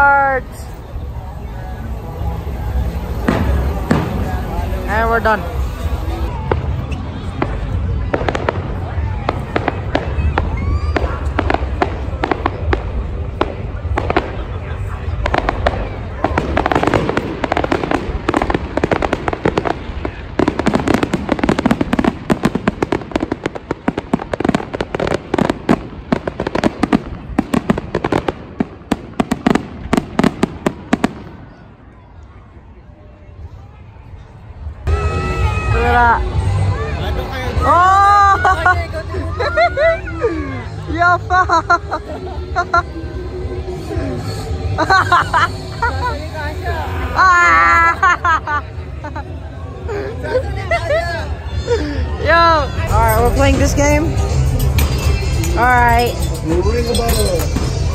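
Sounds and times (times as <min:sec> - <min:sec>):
fireworks bangs and crackling: 0:00.0 - 0:32.0, 0:52.7 - 0:57.9
crowd babble: 0:00.0 - 0:57.9.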